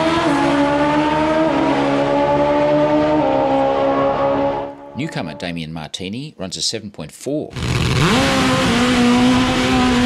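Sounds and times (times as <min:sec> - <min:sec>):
drag motorcycle engine at full throttle: 0:00.0 - 0:04.7, 0:07.6 - 0:10.0.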